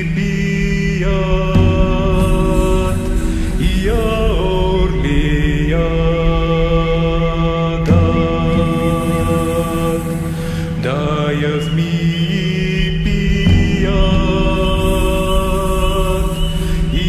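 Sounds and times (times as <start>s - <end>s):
low drone: 0.0s - 17.0s
low drum beat: 0.0s - 17.0s.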